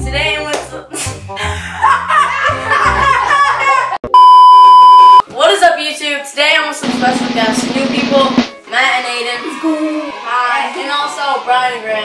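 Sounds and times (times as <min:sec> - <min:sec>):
test-tone beep: 0:04.0 - 0:05.2
voices: 0:06.6 - 0:12.0.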